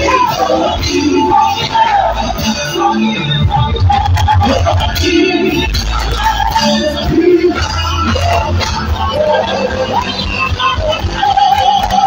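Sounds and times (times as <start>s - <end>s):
band with pulsing bass beat: 0.0s - 12.0s.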